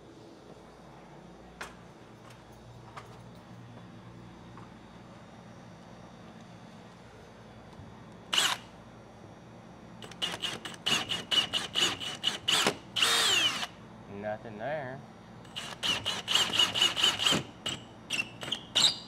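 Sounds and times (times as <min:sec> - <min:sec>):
cordless drill boring into drywall: 0:08.4 - 0:08.6, 0:10.1 - 0:13.7, 0:15.5 - 0:19.0.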